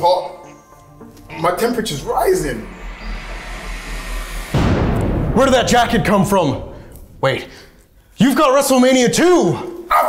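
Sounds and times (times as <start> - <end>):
music: 0.0 - 8.0
deep boom: 1.2 - 8.2
whoosh of noise: 1.2 - 8.2.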